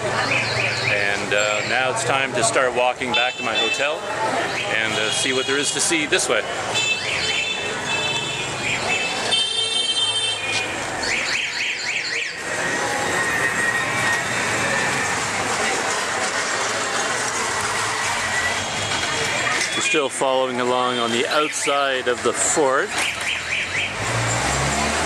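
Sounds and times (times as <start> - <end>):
busy street traffic: 0.0 - 25.0
shrill steady vehicle horn: 6.7 - 11.8, 13.0 - 15.0
warbling horn beeps: 6.8 - 15.2.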